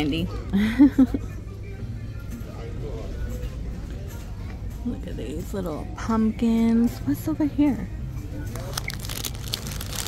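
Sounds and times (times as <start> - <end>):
faint background music: 0.0 - 10.0
low store ambience hum: 0.0 - 10.0
woman laughing: 0.6 - 1.4.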